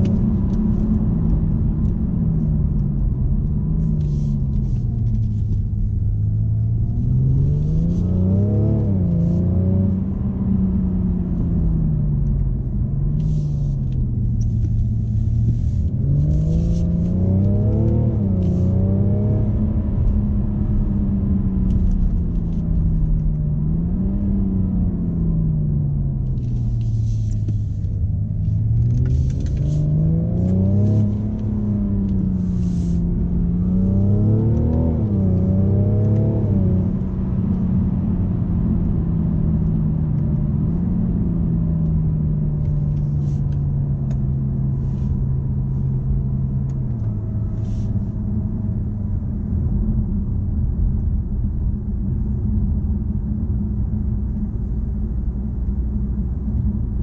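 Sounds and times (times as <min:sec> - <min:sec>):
diesel car engine: 0:00.0 - 0:57.0
road rumble: 0:00.0 - 0:57.0.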